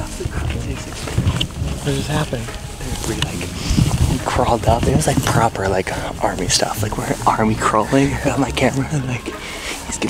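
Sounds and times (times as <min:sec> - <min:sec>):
low rumble: 0:00.0 - 0:10.0
man talking: 0:00.0 - 0:10.0.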